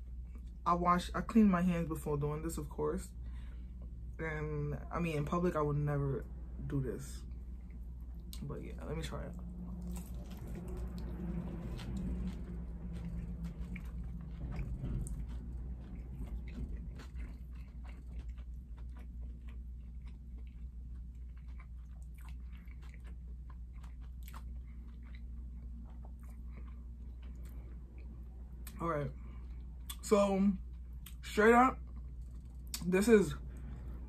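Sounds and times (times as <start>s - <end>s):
person chewing: 7.2s - 31.2s, 31.8s - 32.9s
crunching of crisp breading: 9.6s - 32.9s.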